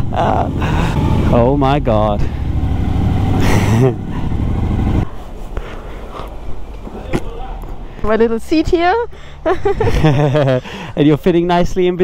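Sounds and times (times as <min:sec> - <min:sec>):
person laughing: 0:00.0 - 0:01.0, 0:03.4 - 0:04.3, 0:09.3 - 0:10.8
motorcycle engine running: 0:00.0 - 0:05.0
street background: 0:00.0 - 0:12.0.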